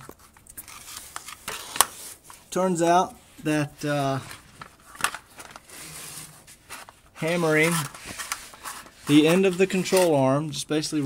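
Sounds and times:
camera handling rustle: 4.3s - 7.0s.

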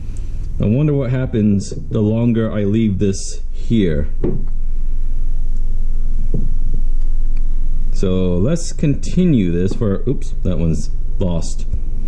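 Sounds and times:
low throbbing rumble: 0.0s - 12.0s.

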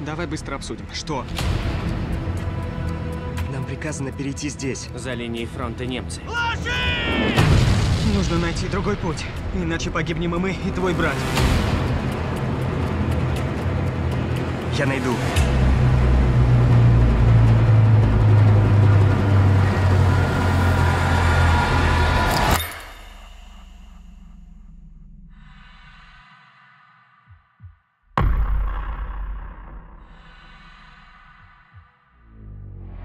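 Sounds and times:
steady low rumble: 23.5s - 26.6s
explosion boom: 28.2s - 30.4s.

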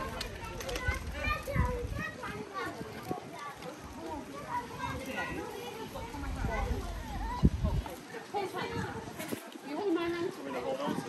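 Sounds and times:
children's voices: 0.0s - 11.0s
passers-by talking: 0.0s - 11.0s.

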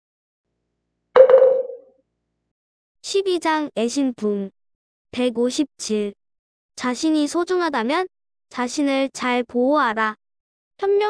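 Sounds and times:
struck percussion ringing tone: 1.2s - 1.8s.

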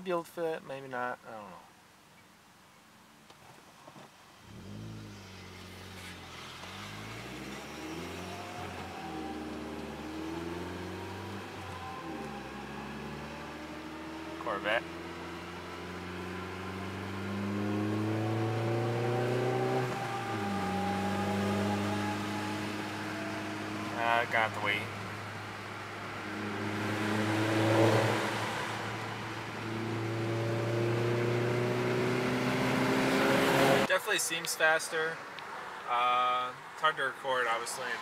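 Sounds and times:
car engine accelerating: 4.4s - 33.9s.

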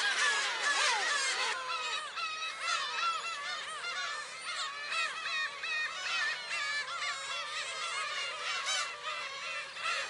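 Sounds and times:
flock of gulls calling: 0.0s - 10.0s.

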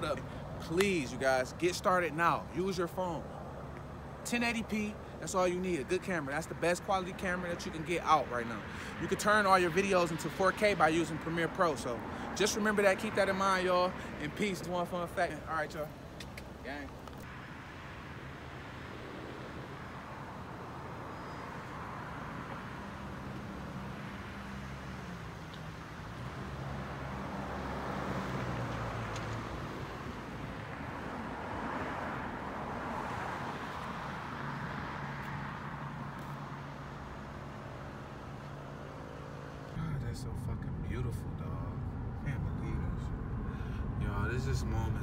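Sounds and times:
car engine and road noise: 0.0s - 45.0s.

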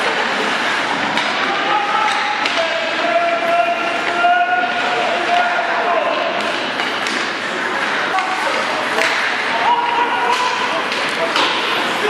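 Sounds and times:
crowd noise: 0.0s - 12.0s
hockey sticks and puck knocking: 1.1s - 12.0s.

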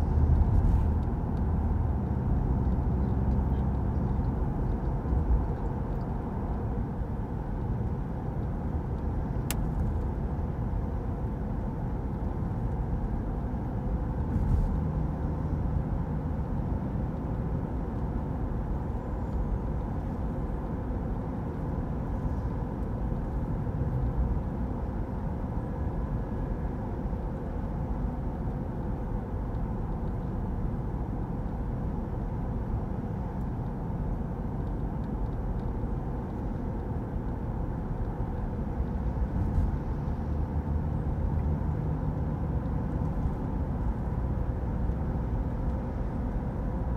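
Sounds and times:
car interior road and engine noise: 0.0s - 46.9s.

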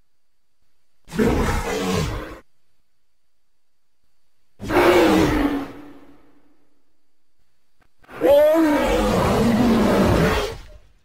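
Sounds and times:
creature roar: 1.1s - 2.4s, 4.6s - 6.0s, 8.1s - 10.8s.

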